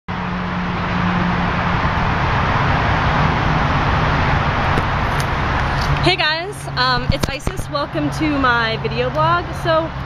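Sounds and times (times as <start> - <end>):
low engine hum: 0.1 - 10.0
road traffic noise: 0.1 - 10.0.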